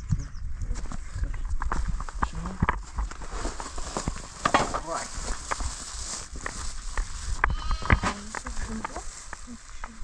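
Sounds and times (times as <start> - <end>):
sheep bleating: 7.4 - 8.2.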